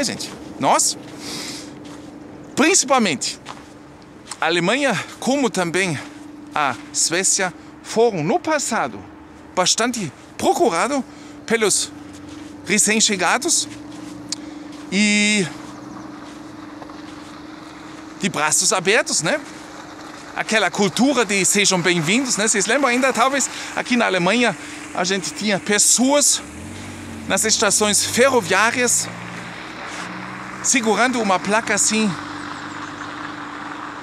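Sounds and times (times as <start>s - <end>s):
faint outdoor background noise: 0.0s - 34.0s
steady low hum: 0.0s - 34.0s.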